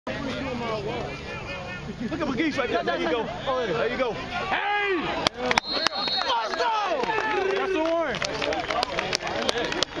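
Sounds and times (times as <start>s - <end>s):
people yelling and cheering: 0.1s - 10.0s.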